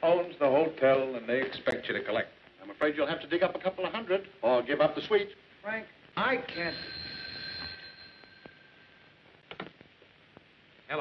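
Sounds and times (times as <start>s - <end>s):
telephone bell ringing: 6.4s - 9.3s.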